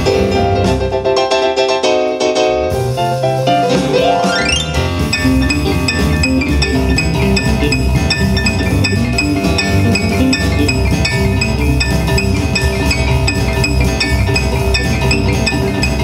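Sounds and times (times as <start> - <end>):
blues band playing: 0.0 - 16.0
cymbals ticking steady beat: 5.1 - 16.0.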